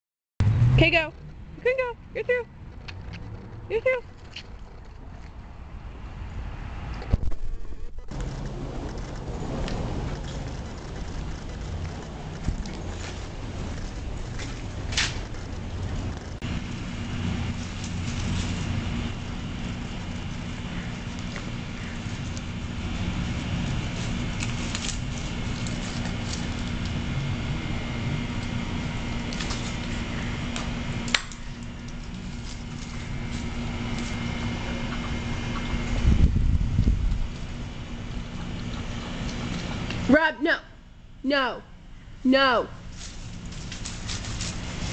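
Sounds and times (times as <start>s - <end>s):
mechanical hum: 0.4s - 44.9s.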